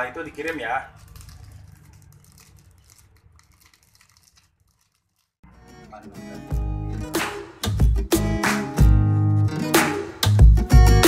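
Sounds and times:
plastic bags crinkling: 0.4s - 5.4s
music: 5.4s - 11.0s.

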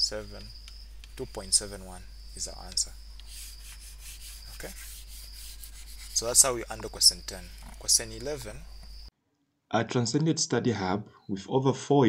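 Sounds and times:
low electrical hum: 0.0s - 9.1s
stylus scraping on tablet screen: 2.5s - 8.6s.

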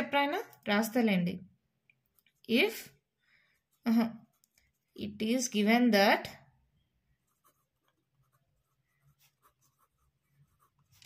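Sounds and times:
pen scratching on paper: 7.1s - 11.0s.

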